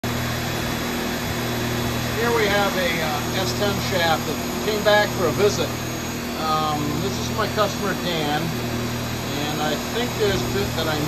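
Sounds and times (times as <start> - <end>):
balancing machine spinning driveshaft: 0.1 - 11.0.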